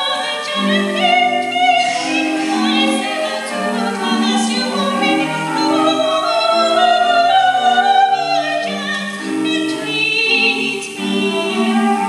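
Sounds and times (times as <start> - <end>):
choir singing through speakers: 0.0 - 12.0.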